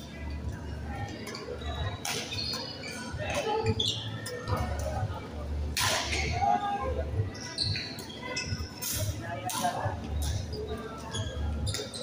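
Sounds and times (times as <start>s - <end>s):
shoe squeaks: 1.6s - 4.4s, 7.3s - 8.8s, 10.3s - 12.0s.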